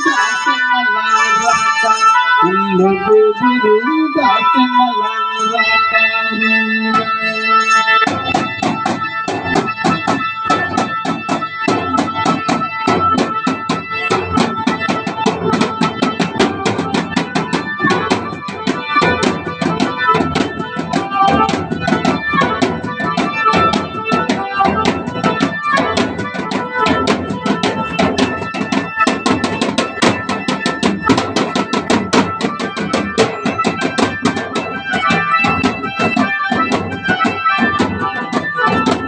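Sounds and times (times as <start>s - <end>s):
organ-like held notes: 0.0s - 39.0s
fast drum beating: 8.1s - 39.0s.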